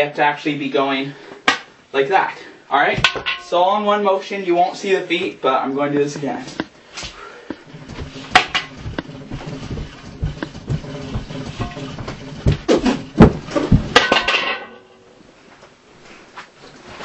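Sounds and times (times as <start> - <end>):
dancing feet on floor: 6.4 - 14.4.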